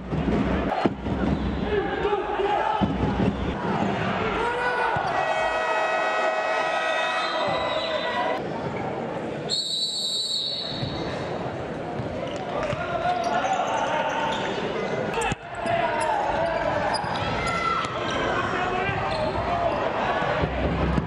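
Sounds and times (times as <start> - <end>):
crowd voices echoing: 0.2 - 21.0
players shouting: 1.6 - 8.4.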